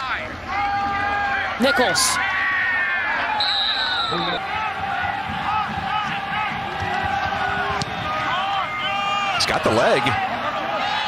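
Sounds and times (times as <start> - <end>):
stadium crowd noise: 0.0 - 11.0
referee's whistle: 3.3 - 4.4.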